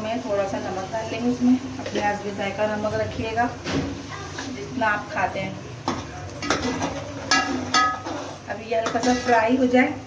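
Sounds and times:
metal spoon stirring in pot: 0:06.4 - 0:09.9
spoon striking metal pot: 0:07.3 - 0:08.1.

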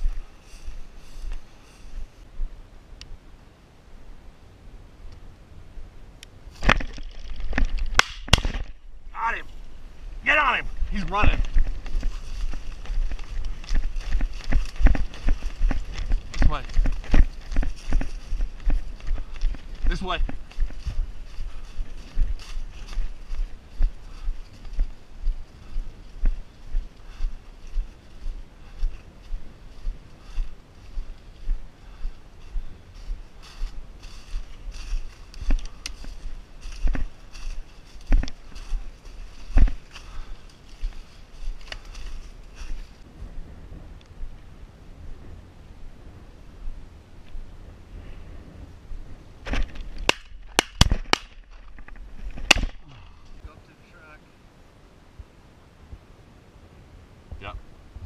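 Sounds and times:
footsteps crunching through stubble: 0:00.0 - 0:02.6, 0:06.5 - 0:43.1, 0:49.4 - 0:53.4.

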